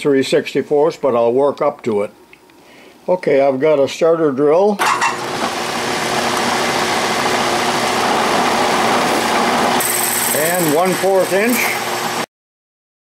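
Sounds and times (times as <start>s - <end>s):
metal lathe running: 4.8s - 12.3s.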